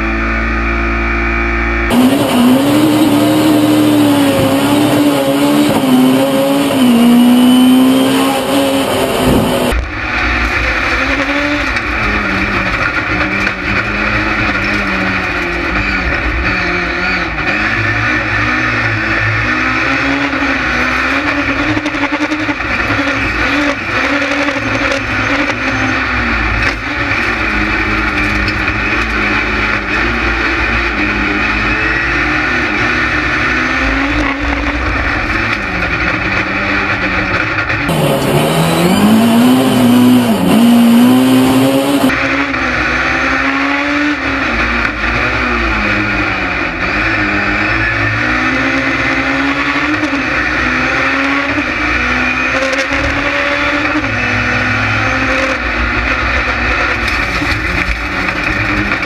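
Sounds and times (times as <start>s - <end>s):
race car engine revving: 0.0s - 59.0s
road and tyre noise: 0.0s - 59.0s.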